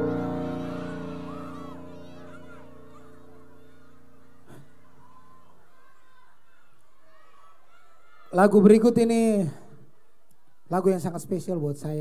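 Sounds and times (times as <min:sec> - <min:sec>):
sustained electric keyboard chord: 0:00.0 - 0:04.4
audience shouting: 0:00.0 - 0:08.4.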